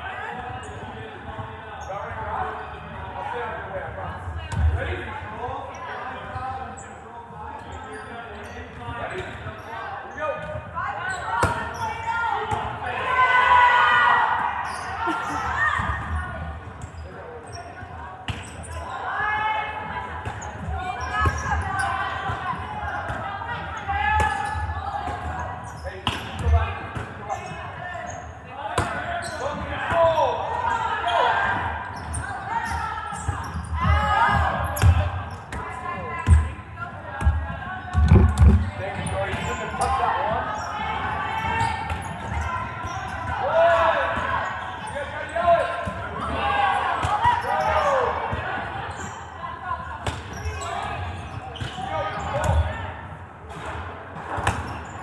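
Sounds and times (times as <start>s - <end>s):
voices calling and chattering: 0.0s - 55.0s.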